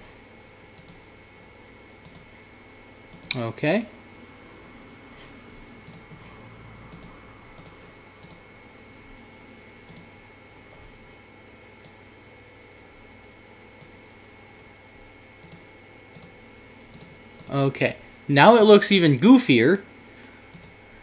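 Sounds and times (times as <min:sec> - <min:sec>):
faint room hum: 0:00.0 - 0:21.0
computer mouse clicks: 0:00.8 - 0:01.0, 0:02.0 - 0:02.3, 0:03.1 - 0:03.4, 0:05.8 - 0:06.2, 0:06.9 - 0:08.4, 0:09.9 - 0:10.1, 0:15.4 - 0:17.6, 0:20.5 - 0:20.8.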